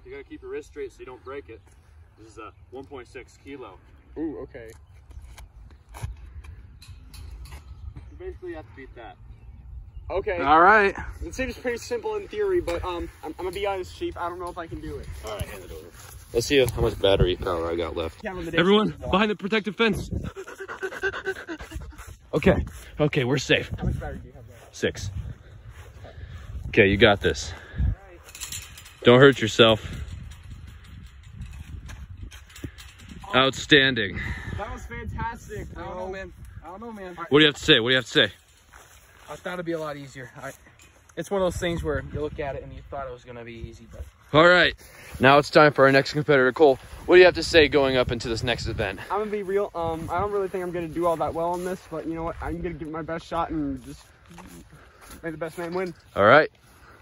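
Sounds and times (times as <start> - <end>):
wind rumble on microphone: 4.8 - 19.2, 19.8 - 20.5, 21.1 - 37.8, 41.4 - 45.2, 46.2 - 54.1.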